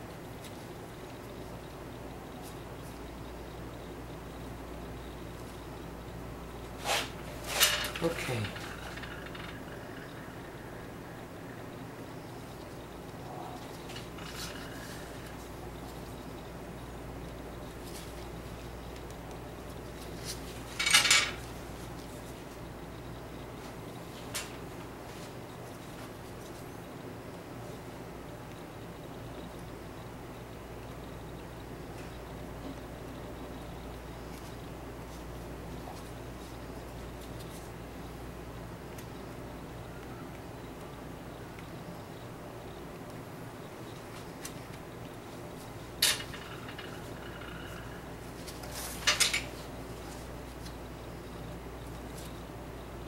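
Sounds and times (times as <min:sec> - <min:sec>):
low background hum: 0:00.0 - 0:53.0.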